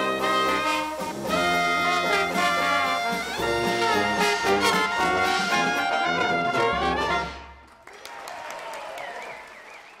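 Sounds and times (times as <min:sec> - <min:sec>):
audience applauding: 0:07.6 - 0:10.0.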